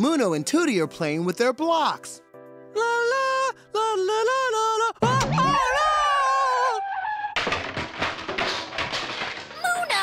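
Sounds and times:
person exclaiming: 2.8s - 6.8s
toy blocks toppling crash: 7.3s - 10.0s.

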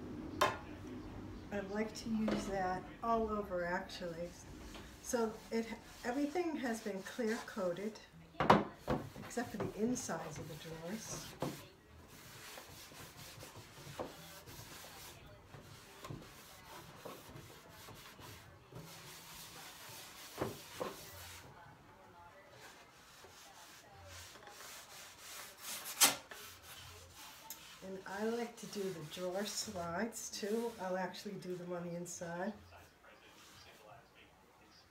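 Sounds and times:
cloth rubbing on wood: 2.1s - 7.9s, 9.0s - 21.6s, 22.5s - 32.1s.

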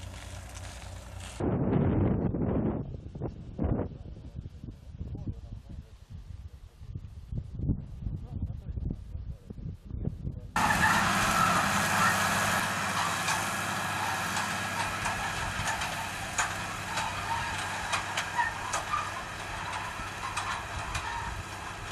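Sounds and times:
tractor engine under load: 0.0s - 1.4s, 10.6s - 21.9s
wind rumbling on microphone: 0.0s - 11.5s, 13.1s - 21.9s
harrow clicking and clanking: 10.6s - 21.9s.

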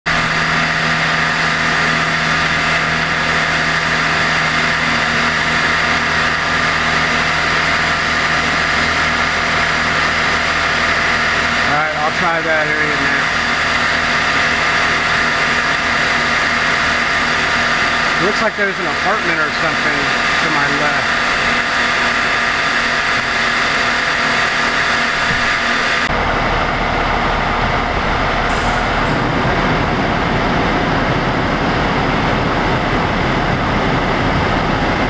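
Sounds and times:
vehicle engine idling: 0.1s - 35.0s.

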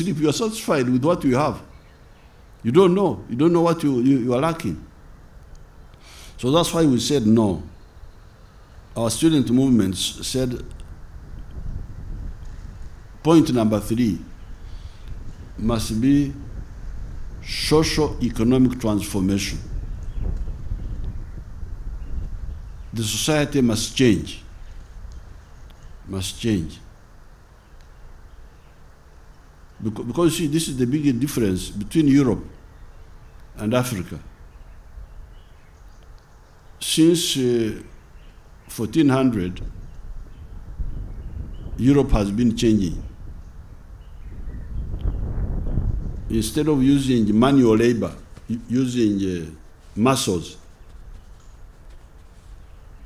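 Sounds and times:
wind buffeting microphone: 6.5s - 27.0s, 39.3s - 53.0s
faint click: 27.8s - 28.0s.

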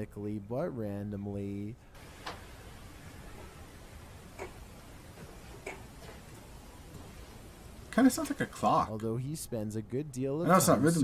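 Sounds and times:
low hiss: 0.0s - 11.0s
faint irregular tapping ticks: 4.3s - 7.0s.

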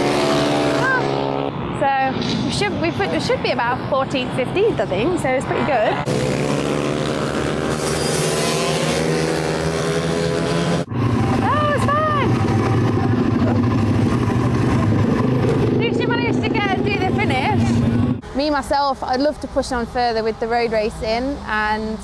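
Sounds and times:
low engine drone: 0.0s - 8.3s, 9.2s - 18.3s
motorcycle engines running hard: 0.0s - 18.2s
people's voices: 11.4s - 12.6s, 15.7s - 22.0s.

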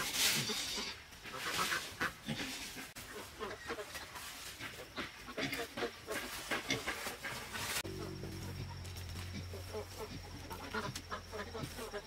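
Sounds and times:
farm animals calling: 0.2s - 12.0s.

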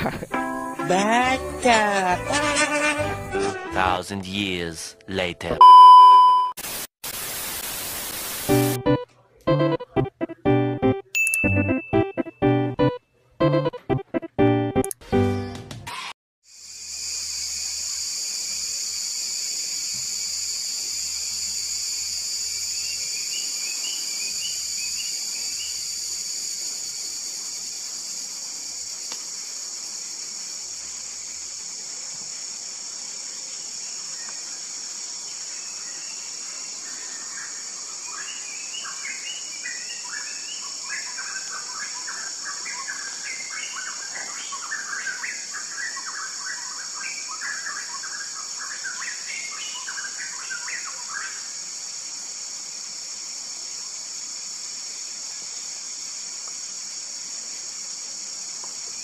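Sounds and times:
high-pitched insect drone: 16.5s - 32.9s.

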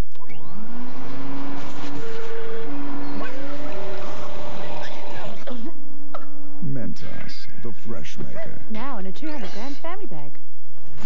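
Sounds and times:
electric motor whirring: 0.2s - 5.8s.

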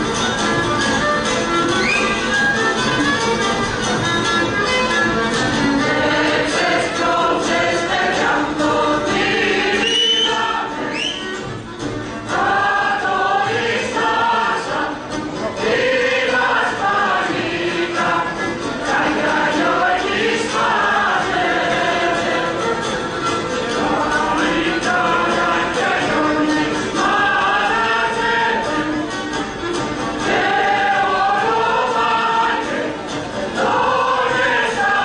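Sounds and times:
folk music: 0.0s - 35.0s
group singing folk dance song: 0.0s - 35.0s.

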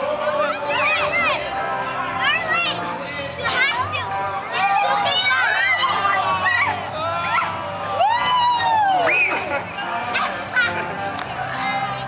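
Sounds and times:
children shouting while playing: 4.5s - 10.8s.

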